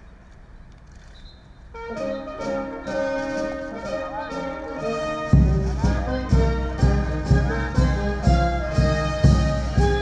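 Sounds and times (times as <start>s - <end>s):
brass band playing: 1.7s - 10.0s.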